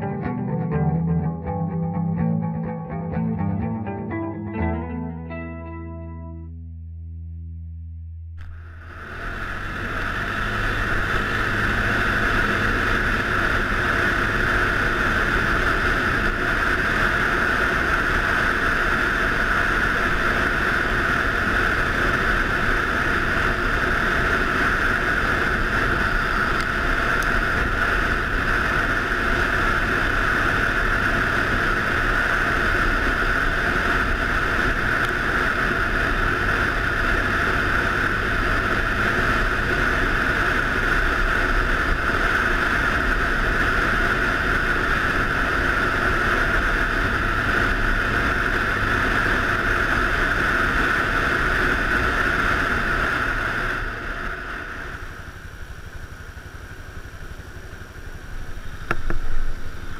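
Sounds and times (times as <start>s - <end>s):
engine running steadily: 0.0s - 59.9s
wind noise on microphone: 8.4s - 57.2s, 57.8s - 59.9s.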